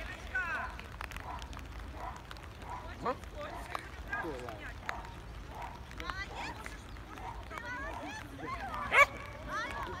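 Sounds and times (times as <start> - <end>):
people calling: 0.0 - 10.0
dog barking: 1.2 - 3.8, 4.8 - 6.0, 7.2 - 8.1, 8.7 - 9.2.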